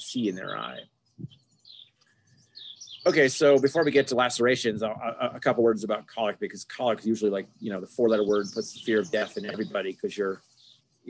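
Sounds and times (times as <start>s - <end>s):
person speaking: 0.0s - 0.8s, 3.1s - 10.4s
faint bird chirps: 0.0s - 11.0s.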